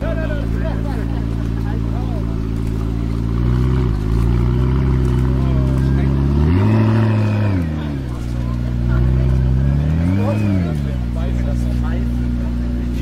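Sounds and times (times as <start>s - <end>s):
car engine idling and revving: 0.0s - 13.0s.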